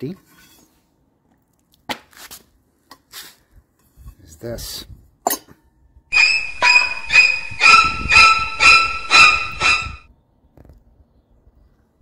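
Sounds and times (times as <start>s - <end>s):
metallic bell ringing: 6.1s - 10.0s.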